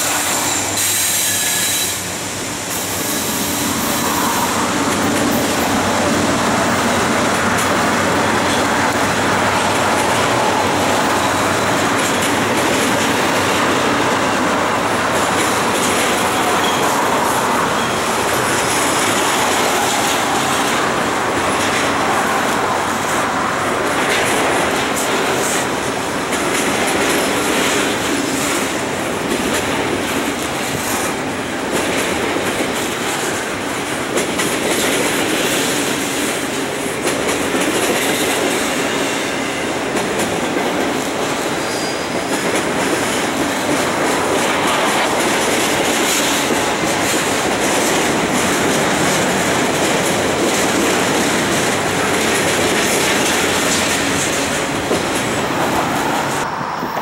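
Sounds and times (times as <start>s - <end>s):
freight train wheels rolling on rails: 0.0s - 57.0s.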